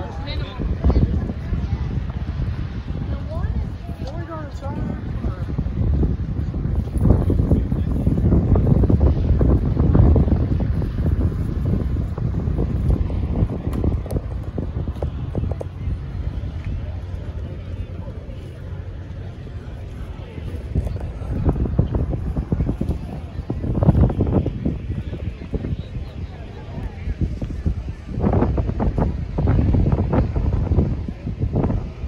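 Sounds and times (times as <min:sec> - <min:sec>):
people talking: 0:00.0 - 0:32.0
wind buffeting microphone: 0:00.0 - 0:32.0.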